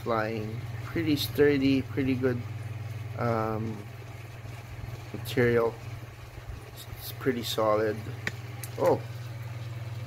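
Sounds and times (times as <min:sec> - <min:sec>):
low fluttering hum: 0:00.0 - 0:10.0.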